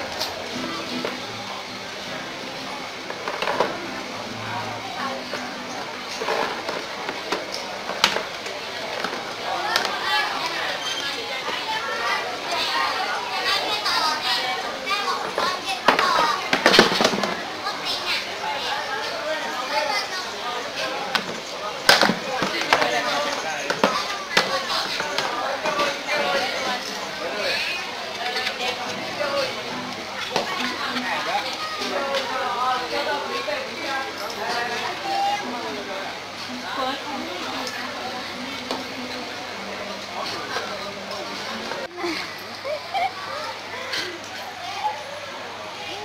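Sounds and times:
people talking indistinctly: 0.0s - 46.0s
plastic chair knocking on tiled floor: 15.9s - 17.4s.

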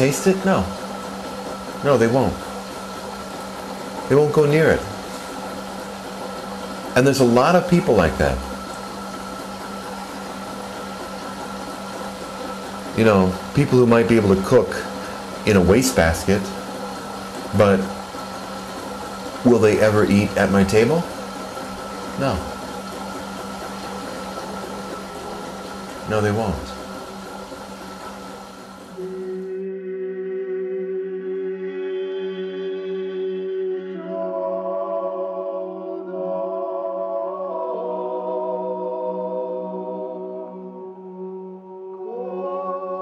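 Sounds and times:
immersion circulator humming: 0.0s - 43.0s.

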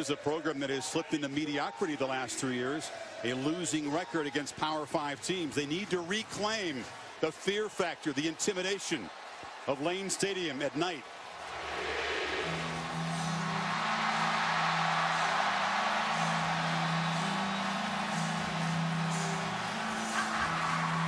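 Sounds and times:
stadium crowd cheering: 0.0s - 21.0s.

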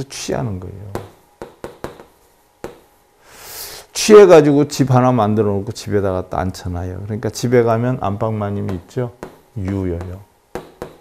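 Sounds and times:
chalk tapping on chalkboard: 0.9s - 2.9s, 8.6s - 11.0s.

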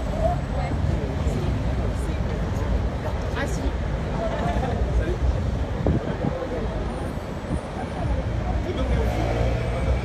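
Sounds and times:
low rumble of traffic: 0.0s - 10.0s.

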